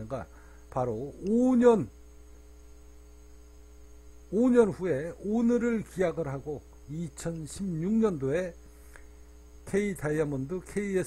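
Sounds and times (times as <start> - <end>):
faint hiss: 0.0 - 11.0
low electrical hum: 0.0 - 11.0.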